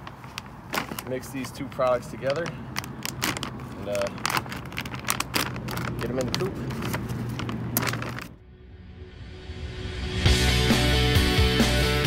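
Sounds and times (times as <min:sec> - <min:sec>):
bag rustling and clicking: 0:00.0 - 0:08.4
background music: 0:08.4 - 0:12.0.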